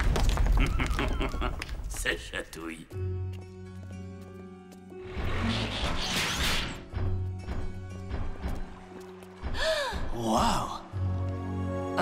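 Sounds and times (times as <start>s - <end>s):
rock wall crashing and crumbling: 0.0s - 1.9s
background music: 0.4s - 12.0s.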